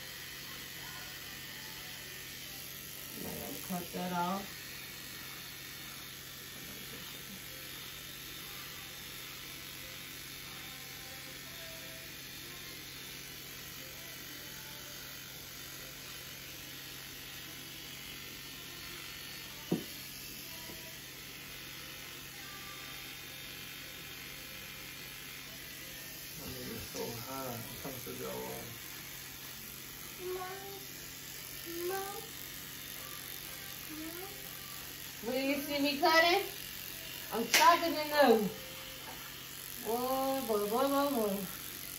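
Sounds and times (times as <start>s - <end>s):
electric beard trimmer buzzing: 0.0s - 41.9s.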